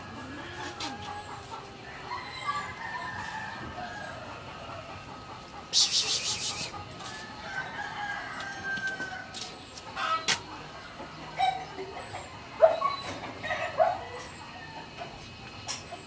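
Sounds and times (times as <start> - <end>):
faint long animal call: 5.7 - 6.7
short sharp animal calls: 5.7 - 6.7.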